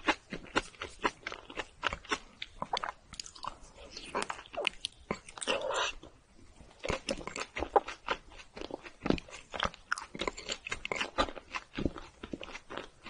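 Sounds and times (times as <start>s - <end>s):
chewing with mouth clicks: 0.0s - 6.1s, 6.8s - 13.0s.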